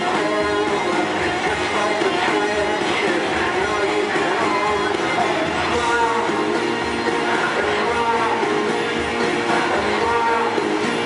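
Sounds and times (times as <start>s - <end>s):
music over sound system: 0.0s - 11.0s.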